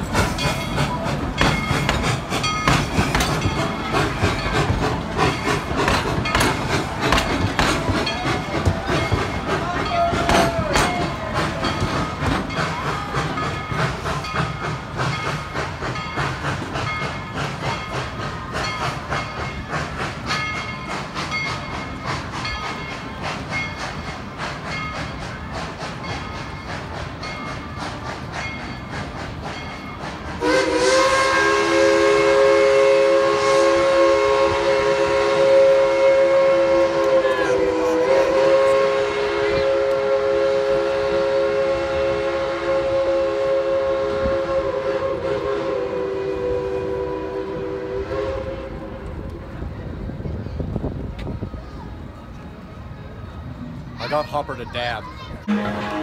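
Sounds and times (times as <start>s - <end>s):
steam train clicking rhythm: 0.0s - 56.0s
steam whistle blast: 30.4s - 49.0s, 55.4s - 56.0s.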